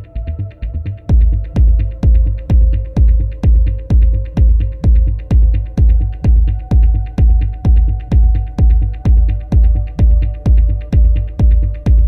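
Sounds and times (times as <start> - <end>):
kick drum with deep bass: 0.0 - 12.0.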